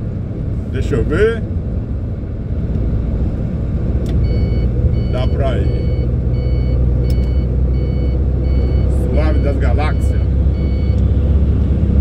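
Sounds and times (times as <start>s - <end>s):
truck engine droning: 0.0s - 12.0s
turn signal beeping: 4.1s - 11.1s.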